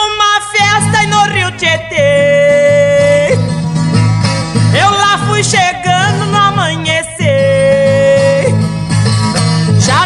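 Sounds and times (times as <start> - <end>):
woman singing folk song: 0.0 - 10.0
instrumental accompaniment: 0.8 - 10.0.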